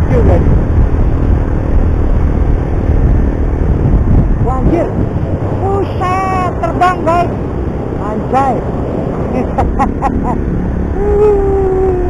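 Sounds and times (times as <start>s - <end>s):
wind rushing past: 0.0s - 12.0s
voice making wavering sounds: 9.9s - 12.0s.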